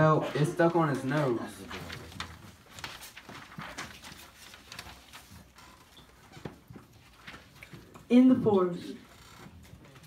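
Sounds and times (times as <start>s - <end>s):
puppets tapping and rustling: 0.6s - 8.2s.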